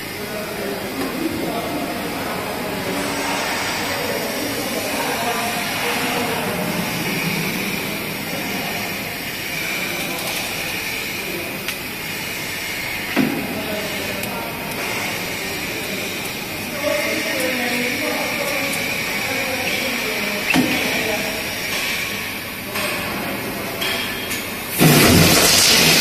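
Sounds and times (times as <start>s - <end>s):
machine running with hiss and hum: 0.0s - 26.0s.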